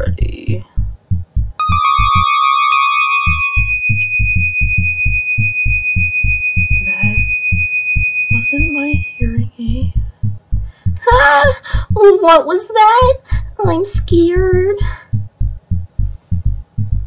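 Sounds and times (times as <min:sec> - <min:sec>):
low throbbing heartbeat pulse: 0:00.0 - 0:02.1, 0:03.6 - 0:12.1, 0:13.1 - 0:17.0
piercing high ringing tone: 0:01.6 - 0:09.5
lower tone: 0:01.6 - 0:10.0.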